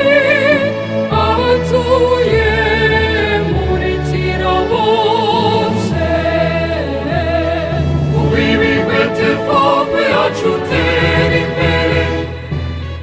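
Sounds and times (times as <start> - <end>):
choir singing: 0.0 - 12.8
instrumental backing with bass: 0.0 - 13.0.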